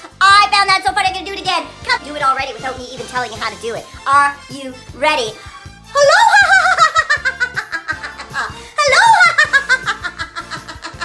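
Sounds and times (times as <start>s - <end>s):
woman laughing rhythmically: 5.9s - 11.0s.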